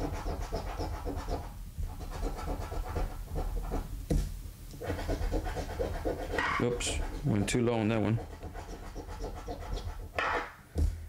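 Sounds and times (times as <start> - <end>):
scraping lottery ticket coating: 4.8 - 10.1.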